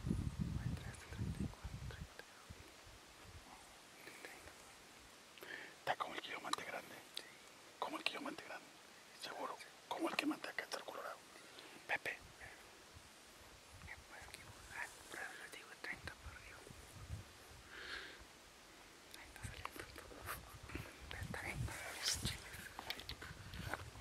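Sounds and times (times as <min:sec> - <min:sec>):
people whispering: 0:00.6 - 0:02.5, 0:03.5 - 0:04.6, 0:05.4 - 0:12.6, 0:13.8 - 0:16.8, 0:19.1 - 0:23.8.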